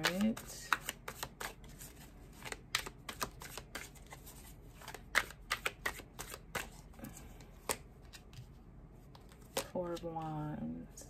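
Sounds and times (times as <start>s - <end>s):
cards being shuffled: 0.0s - 10.2s.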